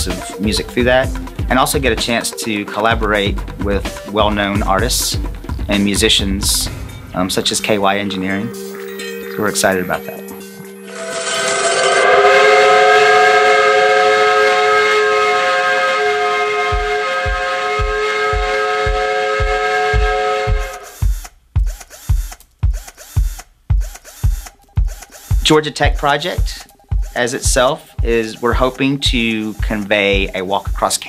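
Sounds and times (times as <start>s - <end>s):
steam whistle chord: 0.0s - 1.2s, 7.4s - 21.0s
kick drum beat: 0.0s - 2.1s, 2.9s - 6.8s, 16.7s - 30.9s.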